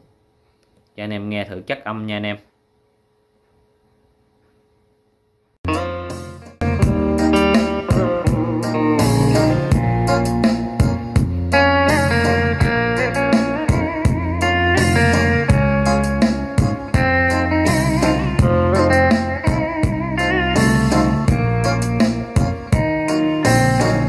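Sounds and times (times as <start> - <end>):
guitar bolero music on speakers: 5.7 - 24.0.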